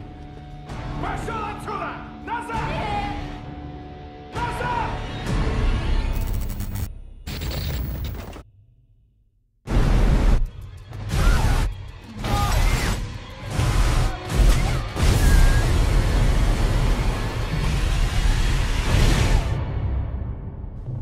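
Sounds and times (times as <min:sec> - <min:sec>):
background music: 0:00.0 - 0:08.0, 0:09.7 - 0:21.0.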